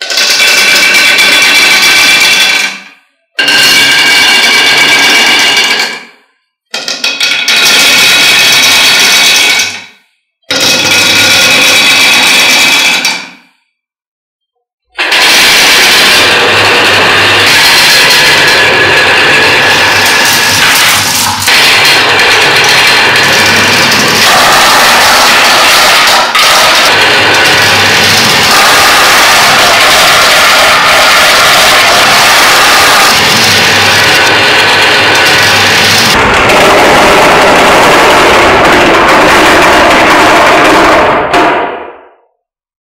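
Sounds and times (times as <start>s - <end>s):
marbles rattling down wooden tracks: 0.0s - 2.8s, 3.4s - 6.0s, 6.8s - 9.9s, 10.5s - 13.4s, 15.0s - 41.5s.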